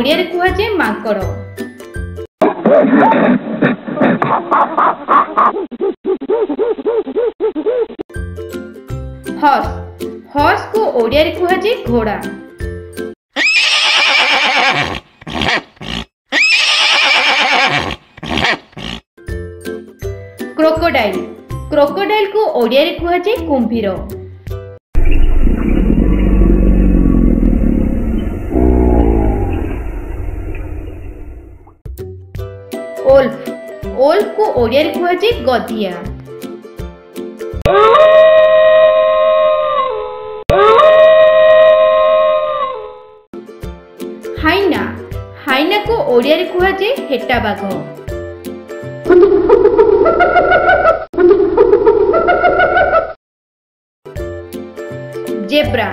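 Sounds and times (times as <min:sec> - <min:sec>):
horse whinnying: 0:13.4 - 0:19.0
wolf howling: 0:25.9 - 0:31.4, 0:37.7 - 0:43.0.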